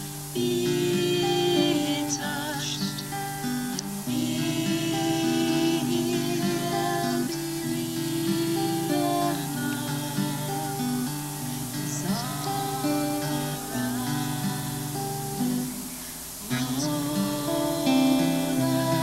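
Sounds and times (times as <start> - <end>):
strummed acoustic guitar: 0.0 - 19.0
two people singing: 0.0 - 19.0.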